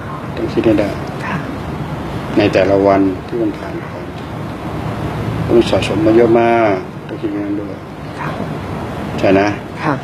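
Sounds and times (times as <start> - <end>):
background room noise: 0.0 - 10.0
man speaking: 0.3 - 1.6, 2.3 - 4.2, 5.4 - 8.4, 9.2 - 9.7.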